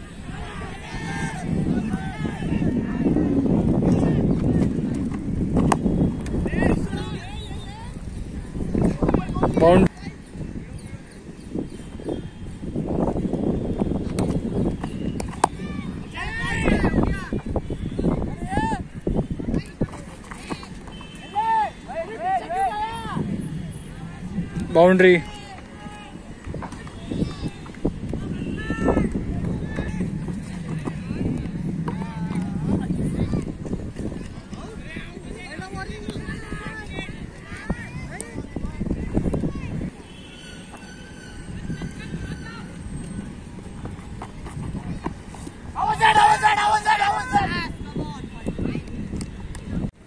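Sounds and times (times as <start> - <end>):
open-air background noise: 0.0 - 50.0
loud held shout: 0.3 - 2.6, 45.8 - 47.8.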